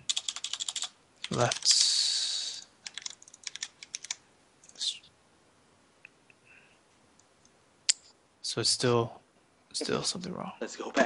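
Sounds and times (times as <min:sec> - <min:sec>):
computer keyboard keystrokes: 0:00.1 - 0:01.7, 0:02.8 - 0:04.8.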